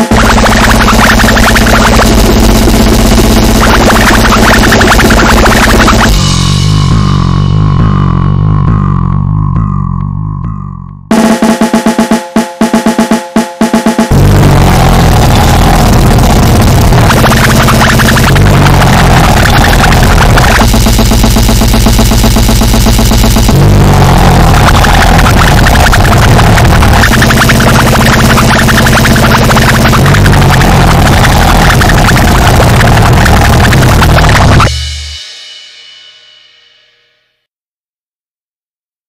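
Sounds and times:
distorted grindcore band playing: 0.0s - 36.6s.

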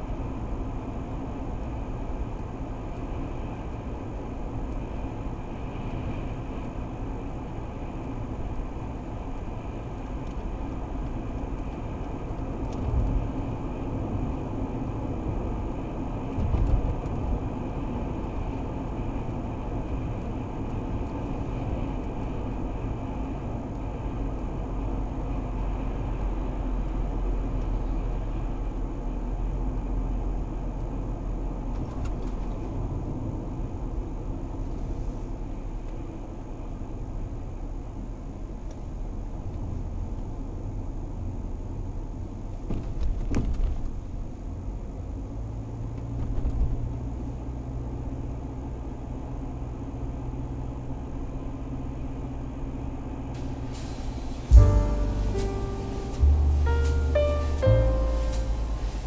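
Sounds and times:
car road and engine rumble: 0.0s - 59.0s
brief low thumps: 54.5s - 59.0s.

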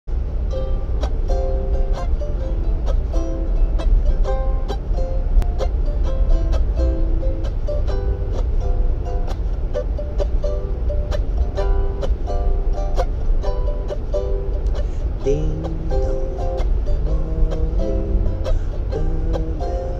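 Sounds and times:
train rumbling: 0.1s - 19.9s
ukulele picked gently: 0.1s - 19.9s.

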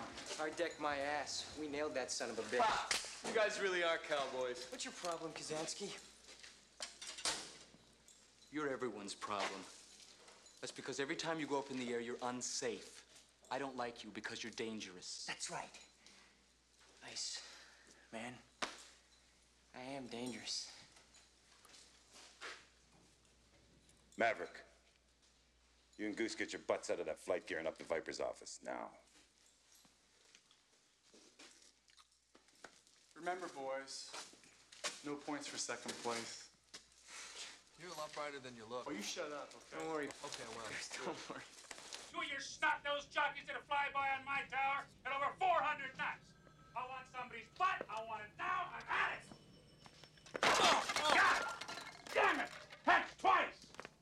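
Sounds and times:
coffee cups clattering on tray: 49.3s - 54.0s.

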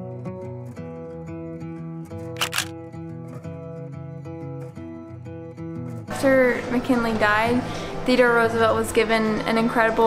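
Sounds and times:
camera shutter clicks: 2.4s - 2.7s.

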